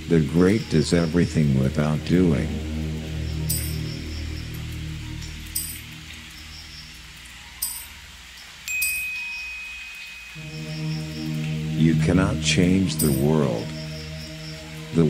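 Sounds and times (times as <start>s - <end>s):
low sustained drone: 0.0s - 7.8s, 10.4s - 15.0s
thin high tone: 0.7s - 6.6s, 7.6s - 8.0s, 8.6s - 15.0s
high chime strikes: 3.5s - 4.0s, 5.6s - 5.9s, 8.7s - 10.6s, 13.0s - 13.4s.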